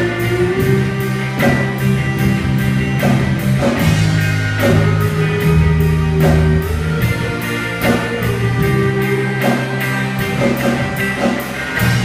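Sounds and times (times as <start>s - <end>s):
electric guitars and bass chords: 0.0s - 12.0s
steady drum beat: 0.0s - 12.0s.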